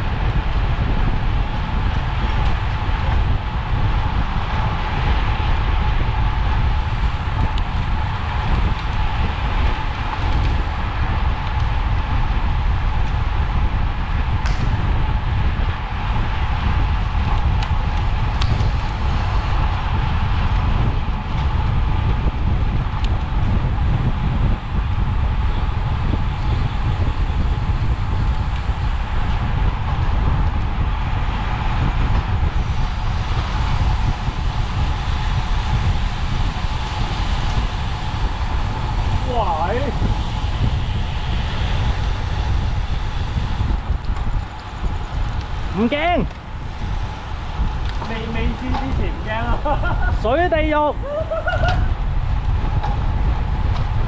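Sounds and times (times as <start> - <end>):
wind rushing on microphone: 0.0 - 54.0
tyres hissing on asphalt: 32.6 - 51.4.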